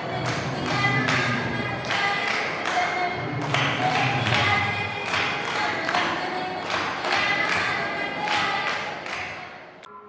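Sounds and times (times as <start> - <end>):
girls singing: 0.0 - 9.9
hand-claps: 0.1 - 9.6.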